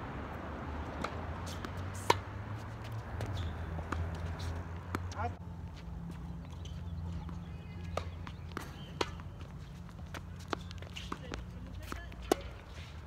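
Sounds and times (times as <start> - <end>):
tennis ball struck by rackets: 0.8 - 5.3, 7.2 - 12.8.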